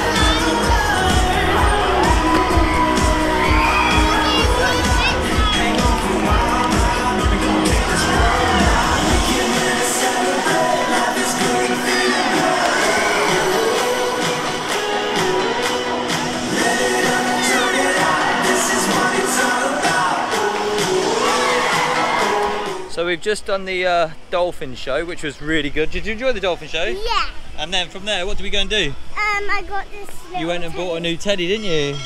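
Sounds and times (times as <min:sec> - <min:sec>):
deep beat: 0:00.0 - 0:09.7
crowd cheering: 0:00.0 - 0:22.9
music with singing: 0:00.0 - 0:22.9
children shouting: 0:01.5 - 0:06.9.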